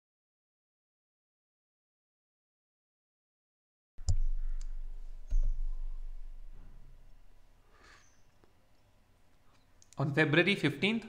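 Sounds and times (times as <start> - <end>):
faint low hum: 4.0 - 11.0.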